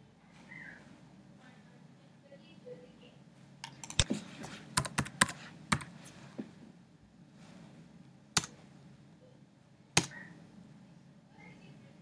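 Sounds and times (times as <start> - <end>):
computer keyboard typing: 3.6 - 4.1, 4.8 - 6.0.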